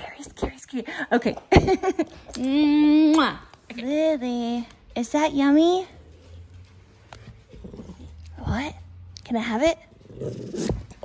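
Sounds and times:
small dog growling: 0:07.5 - 0:08.3, 0:09.9 - 0:11.0.

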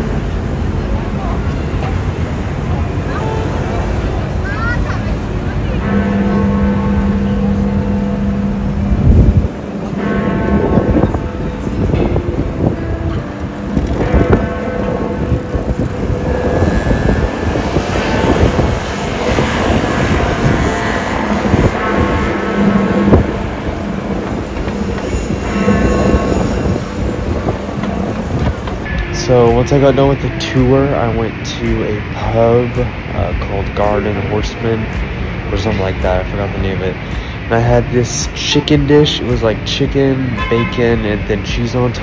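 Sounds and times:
street noise: 0:00.0 - 0:42.0
deep clock bell striking: 0:05.0 - 0:33.0, 0:38.2 - 0:41.2.

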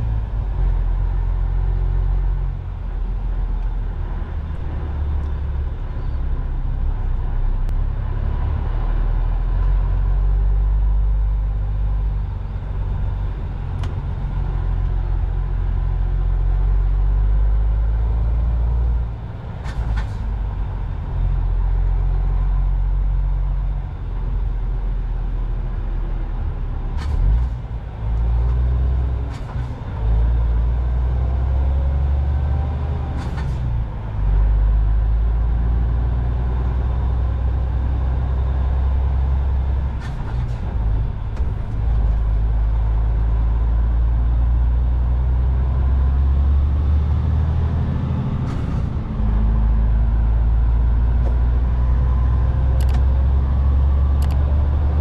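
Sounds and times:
diesel engine and road rumble: 0:00.0 - 0:55.0.

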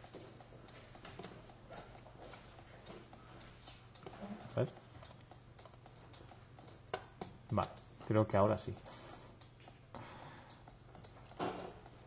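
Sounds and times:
keyboard and mouse clicks: 0:00.0 - 0:12.0
person speaking: 0:07.5 - 0:09.2.

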